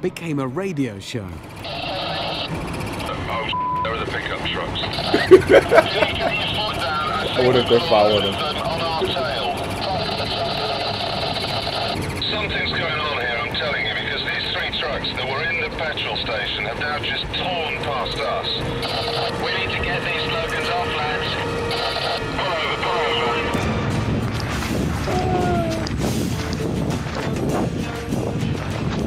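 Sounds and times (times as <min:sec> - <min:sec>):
indistinct voices: 0:01.1 - 0:24.0, 0:25.0 - 0:26.1
vehicles driving at speed: 0:01.3 - 0:15.8, 0:16.6 - 0:28.9
person speaking: 0:05.0 - 0:11.0.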